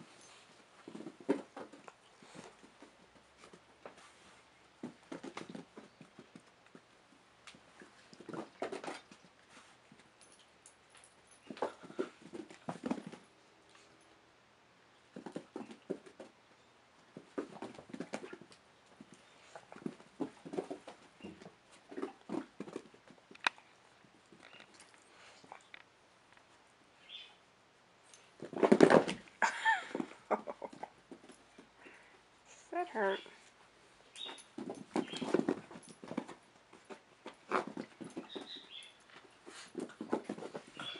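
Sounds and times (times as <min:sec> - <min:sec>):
knocks and scuffs: 0:34.2 - 0:40.9.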